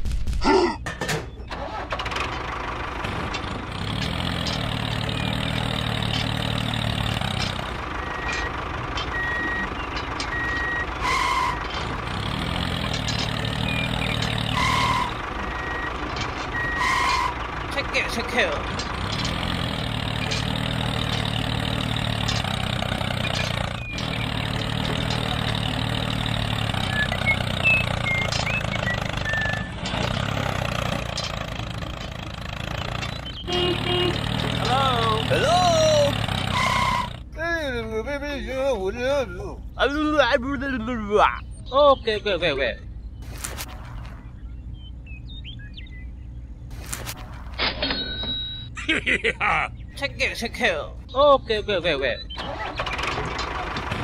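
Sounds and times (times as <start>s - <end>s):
tractor engine running: 0.8s - 54.0s
short high electronic beeps: 47.9s - 48.8s.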